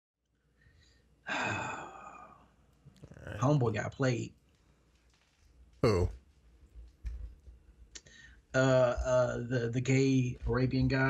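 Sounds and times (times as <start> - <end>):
man sighing: 5.8 - 6.1.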